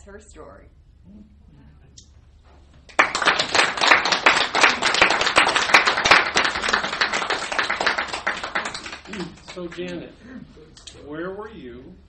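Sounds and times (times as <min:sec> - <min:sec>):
audience applauding: 0:02.9 - 0:09.9.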